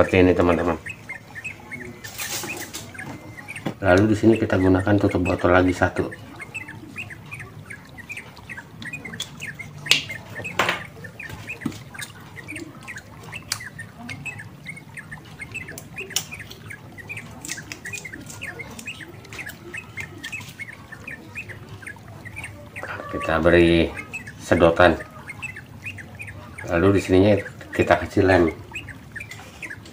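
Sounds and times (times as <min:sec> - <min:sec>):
small birds chirping: 0:00.0 - 0:29.9.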